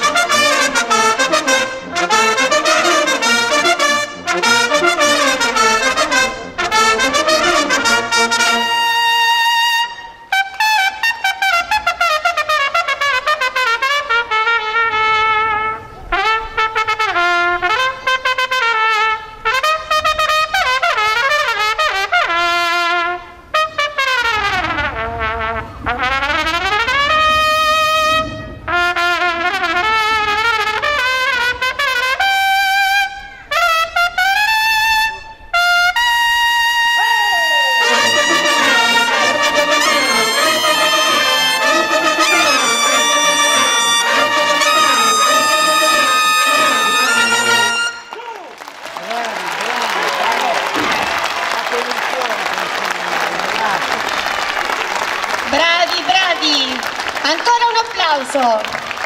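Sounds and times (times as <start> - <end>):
brass fanfare: 0.0 - 59.0.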